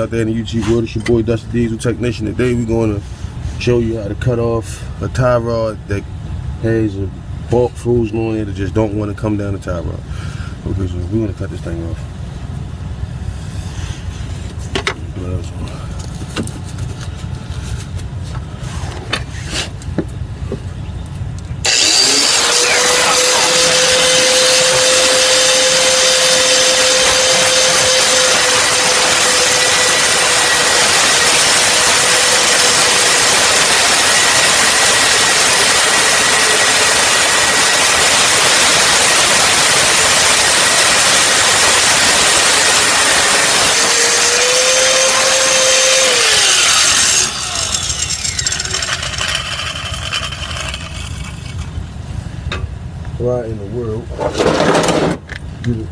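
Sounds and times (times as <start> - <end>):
angle grinder cutting metal: 21.6 - 51.8.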